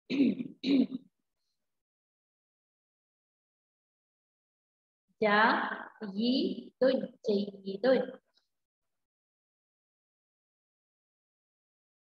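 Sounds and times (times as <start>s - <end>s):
person clearing throat: 0.0s - 1.1s.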